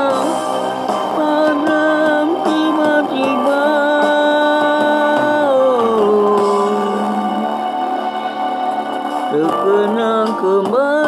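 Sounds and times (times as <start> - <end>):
pop backing music: 0.0 - 11.0.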